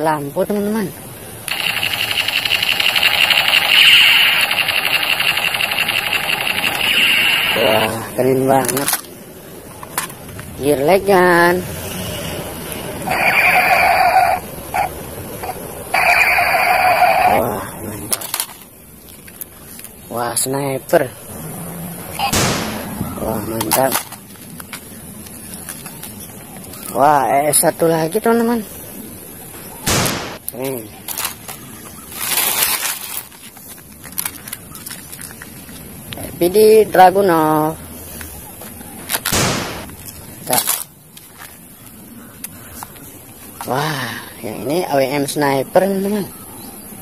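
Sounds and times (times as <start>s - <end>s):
outdoor background hiss: 0.0s - 47.0s
toy gun buzzing rattle: 1.5s - 8.0s.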